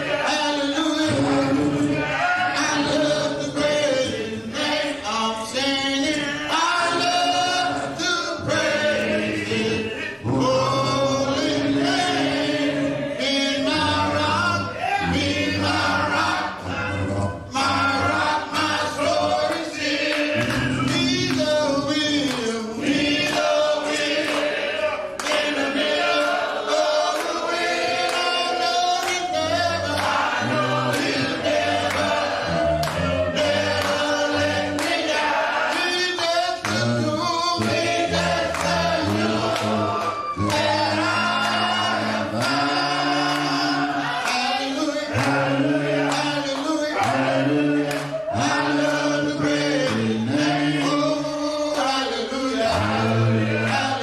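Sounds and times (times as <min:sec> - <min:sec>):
choir singing long notes: 0:00.0 - 0:54.0.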